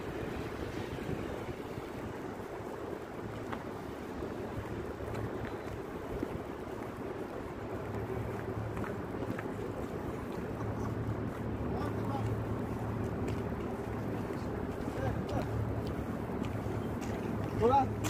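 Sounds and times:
low city rumble: 0.0s - 18.0s
wind on microphone: 0.0s - 18.0s.

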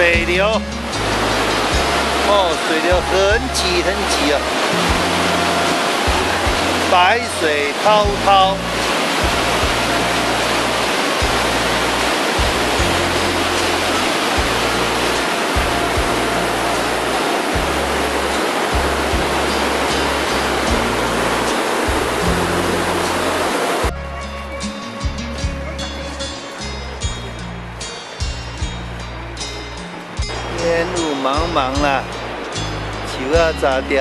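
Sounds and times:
background music: 0.0s - 34.0s
stream rushing over boulders: 0.0s - 34.0s.

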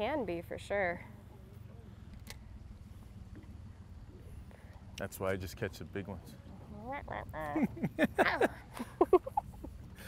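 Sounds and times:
low rumble aboard boat: 0.0s - 10.0s.

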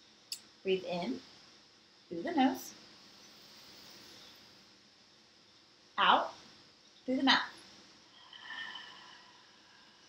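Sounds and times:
woman exhaling slowly: 8.2s - 10.0s.

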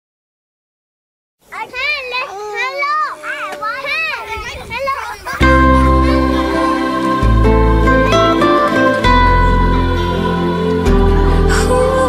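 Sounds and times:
children calling out: 1.5s - 12.0s.

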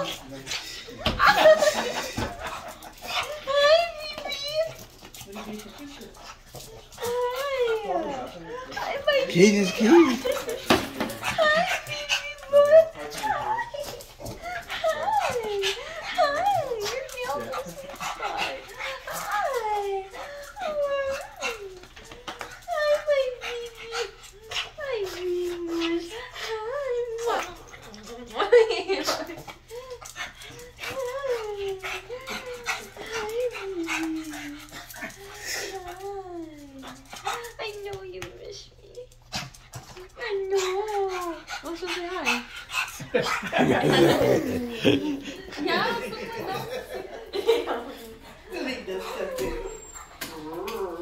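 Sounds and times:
dog whining: 49.2s - 51.0s.

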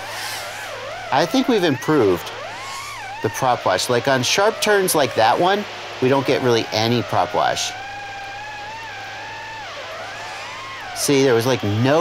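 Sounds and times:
distant drone motors whining: 0.0s - 12.0s.

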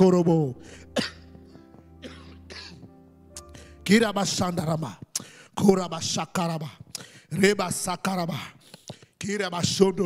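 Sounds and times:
soft background music: 0.0s - 8.6s
man breathing into microphone: 0.6s - 1.0s, 3.4s - 3.8s, 5.2s - 5.6s, 6.9s - 7.3s, 8.6s - 9.2s.

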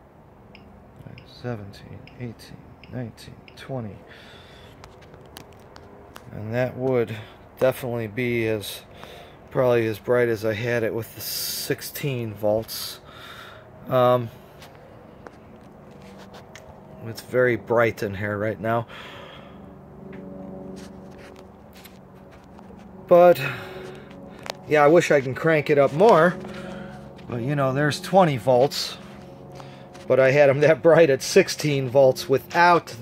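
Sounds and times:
low steady hum: 0.0s - 33.0s
faint rustles and clicks: 4.7s - 6.4s, 14.5s - 16.9s, 20.1s - 23.1s.

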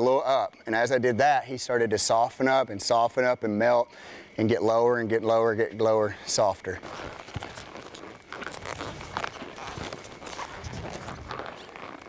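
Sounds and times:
horse hooves in soft dirt: 6.3s - 12.0s
clothing and tack rustling: 6.8s - 12.0s.

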